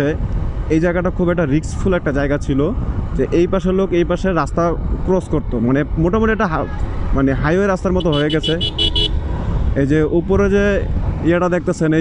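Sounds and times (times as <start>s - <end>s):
low rumble of traffic: 0.0s - 12.0s
horn beeping rapidly: 7.9s - 9.2s.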